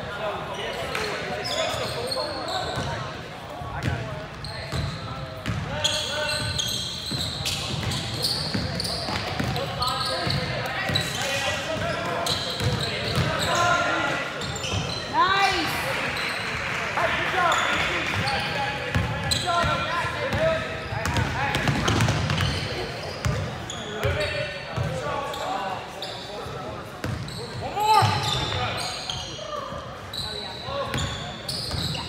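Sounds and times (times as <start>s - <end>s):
sneakers squeaking: 0.4s - 16.7s, 17.4s - 32.0s.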